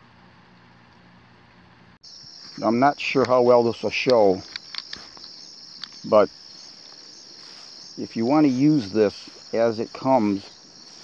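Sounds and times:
crickets chirping: 2.0s - 11.0s.

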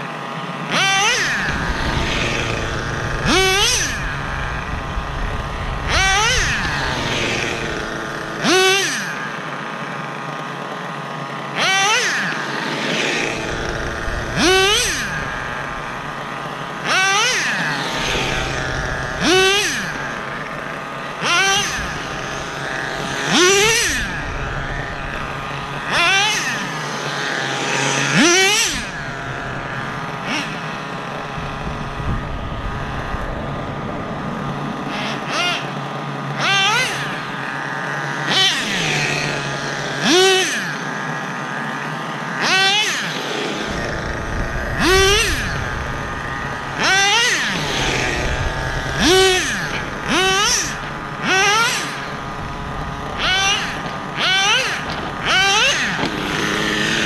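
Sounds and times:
small nitro engine revving: 0.0s - 57.0s.

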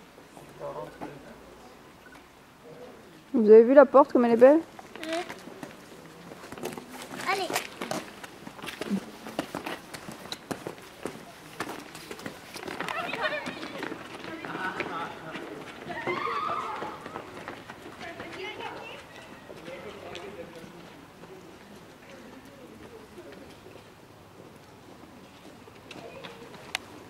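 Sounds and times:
children and adult talking: 0.3s - 27.0s
footsteps on paved street: 4.1s - 27.0s.

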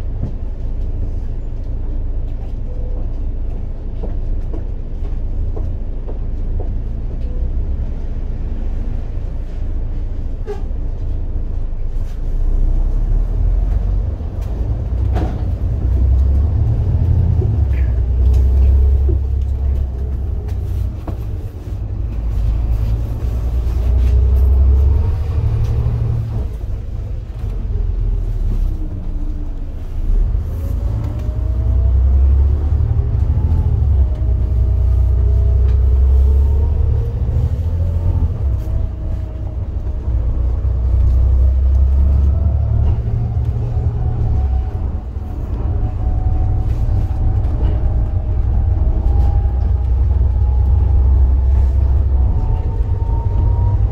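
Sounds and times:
bus engine rumble and whine: 0.0s - 53.9s.

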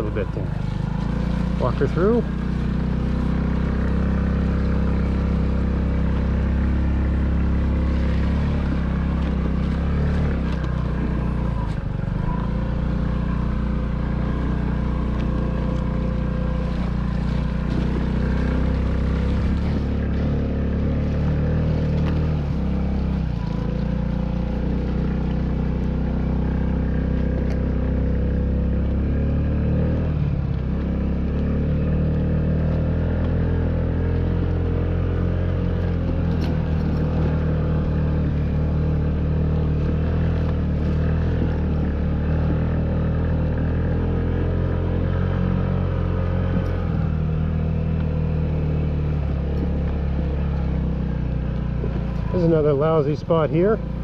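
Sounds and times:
scooter engine running: 0.0s - 54.0s.

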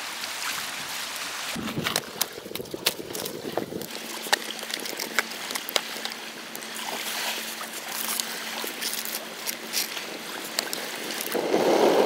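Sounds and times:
water washing on pebble shore: 0.0s - 12.0s.

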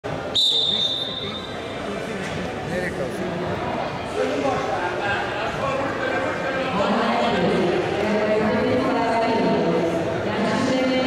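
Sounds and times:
chatter echoing in a hall: 0.0s - 11.0s
referee's whistle: 0.3s - 1.6s.

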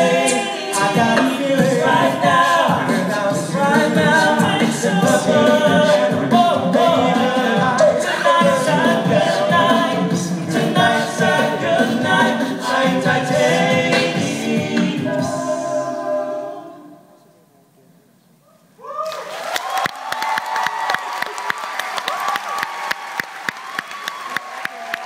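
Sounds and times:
steady percussive beat: 0.0s - 15.4s
male group singing in harmony: 0.0s - 17.0s.

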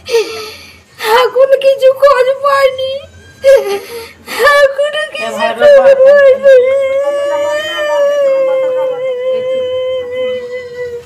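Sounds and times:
woman wailing in grief: 5.6s - 11.0s.

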